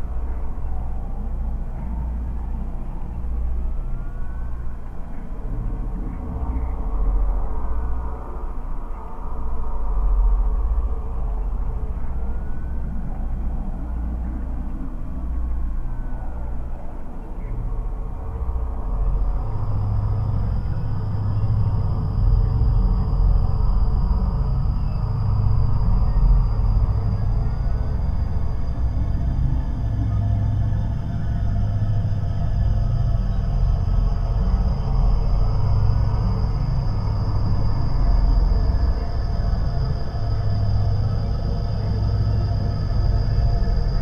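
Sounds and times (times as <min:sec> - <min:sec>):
faint gliding tones: 0:00.0 - 0:44.0
thin steady high tone: 0:15.4 - 0:44.0
pulsing low throbs: 0:17.5 - 0:44.0
rumbling bass drone: 0:17.5 - 0:44.0.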